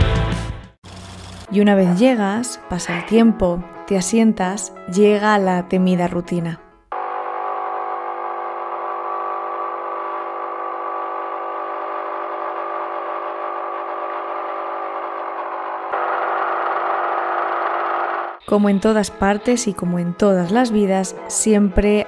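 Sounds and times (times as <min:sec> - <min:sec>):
coffee machine pump humming: 0:07.0 - 0:18.4.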